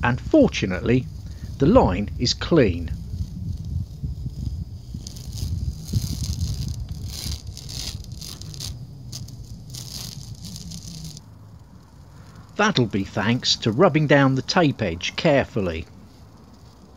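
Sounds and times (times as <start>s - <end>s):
low steady rumble: 0.0s - 16.9s
masking tape peeling: 2.4s - 14.8s.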